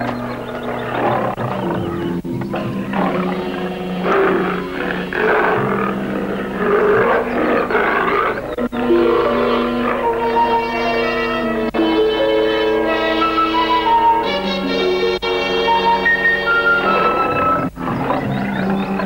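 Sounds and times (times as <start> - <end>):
background music: 0.0 - 19.0
tiger roaring and snarling: 0.5 - 10.4, 16.8 - 19.0.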